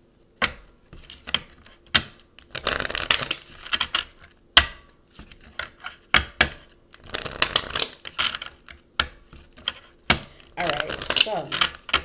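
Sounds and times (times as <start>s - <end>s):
cards rustling: 0.9s - 4.2s, 5.2s - 12.0s
cards clicking and snapping: 5.2s - 12.0s.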